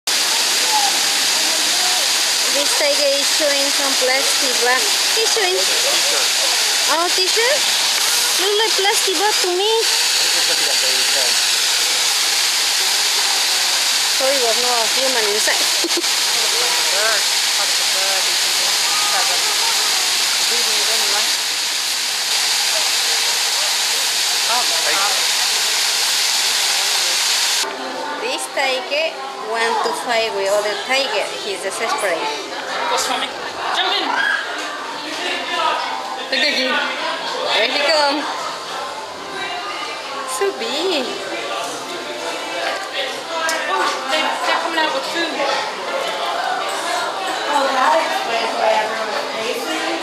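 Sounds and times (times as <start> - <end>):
loud steady hiss: 0.1 - 27.7
running water rushing: 0.1 - 36.0
faint indistinct voices: 0.1 - 50.0.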